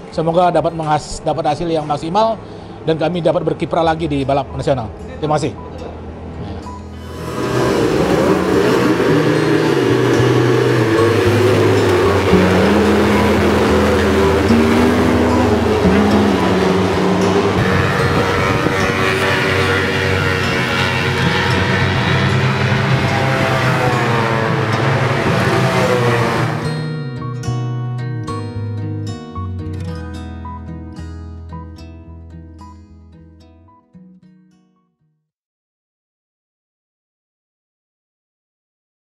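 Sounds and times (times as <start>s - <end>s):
background music: 3.9s - 34.2s
racing motorcycle engine: 6.9s - 27.1s.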